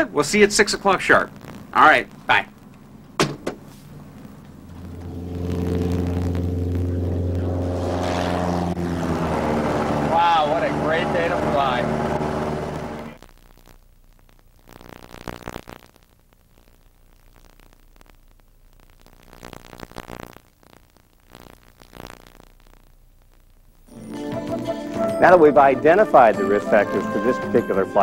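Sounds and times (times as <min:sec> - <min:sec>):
piston engine droning: 0:04.0 - 0:13.2
man's voice: 0:10.1 - 0:11.9, 0:25.2 - 0:28.0.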